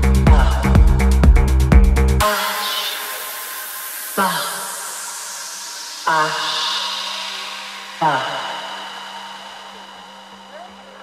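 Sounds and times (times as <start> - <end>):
low synth drone: 0.0 - 11.0
faint kick drum pulse: 0.3 - 2.0.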